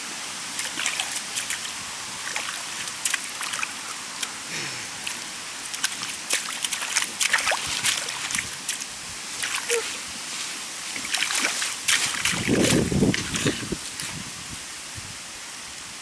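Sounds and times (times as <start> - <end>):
puppy digging in wet mud: 0.6 - 10.0, 10.9 - 13.8
splats of thrown mud: 5.1 - 9.6, 11.0 - 13.7.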